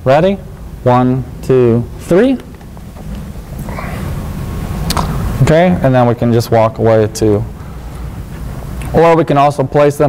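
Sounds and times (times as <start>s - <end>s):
low rumbling handling noise: 0.0s - 9.0s
sharp click: 4.8s - 5.2s.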